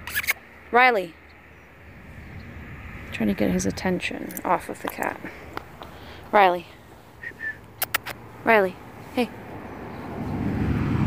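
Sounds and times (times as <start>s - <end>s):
motor vehicle approaching: 0.0s - 11.0s.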